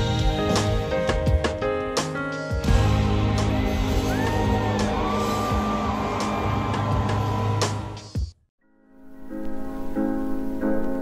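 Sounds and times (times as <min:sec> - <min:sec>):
live rock band playing: 0:00.0 - 0:08.1.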